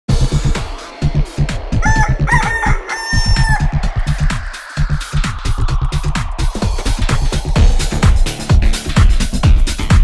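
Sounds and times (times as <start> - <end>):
electronic dance music: 1.0 - 9.6
rooster crowing: 1.8 - 4.2.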